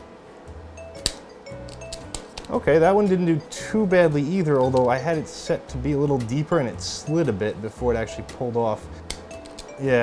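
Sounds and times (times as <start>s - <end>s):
quiet background music: 0.0s - 10.0s
wire stripper metallic clicks: 9.1s - 9.7s.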